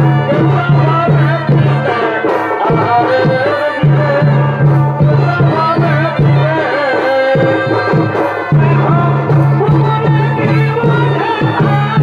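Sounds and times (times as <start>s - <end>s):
low drum beat: 0.0s - 12.0s.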